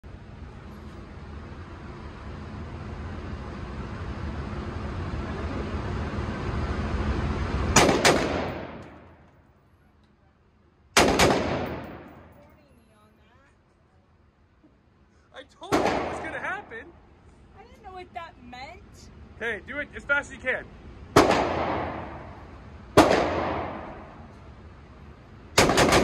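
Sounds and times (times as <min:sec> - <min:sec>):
rifle shots with echo: 0:07.8 - 0:09.1, 0:11.0 - 0:12.4, 0:15.7 - 0:16.7, 0:21.1 - 0:22.4, 0:23.0 - 0:24.3, 0:25.6 - 0:26.0.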